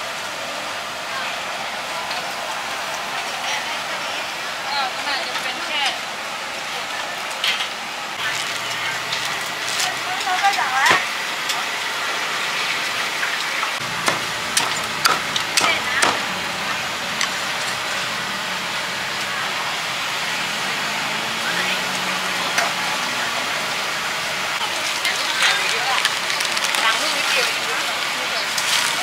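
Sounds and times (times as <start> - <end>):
background voices: 13.7 - 29.0
cleaver chopping on wooden block: 14.0 - 16.2.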